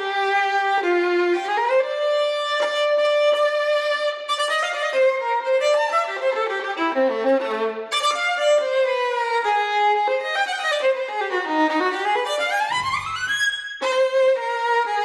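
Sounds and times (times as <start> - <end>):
solo violin bowed: 0.0 - 15.0.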